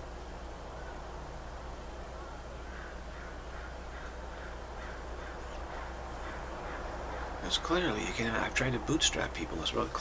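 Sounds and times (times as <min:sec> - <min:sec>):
steady background hum: 0:00.0 - 0:10.0
bird calling: 0:02.1 - 0:08.6.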